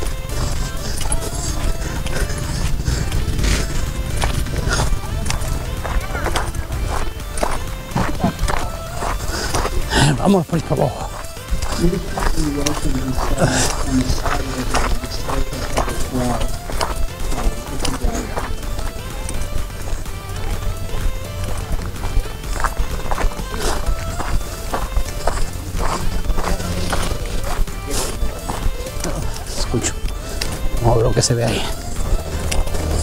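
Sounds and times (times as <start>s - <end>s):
background music: 0.0s - 33.0s
background voices: 0.0s - 33.0s
footsteps on gravel: 0.0s - 33.0s.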